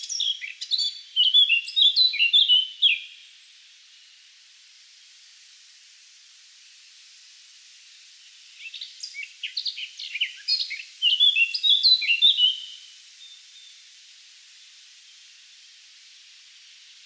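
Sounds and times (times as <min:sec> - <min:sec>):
songbird chirping and whistling: 0:00.0 - 0:03.2, 0:08.6 - 0:13.8
steady hiss: 0:00.0 - 0:17.0.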